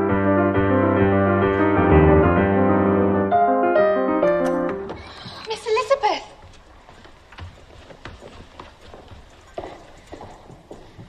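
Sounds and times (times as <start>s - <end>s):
horse hooves clip-clopping: 4.8s - 11.0s.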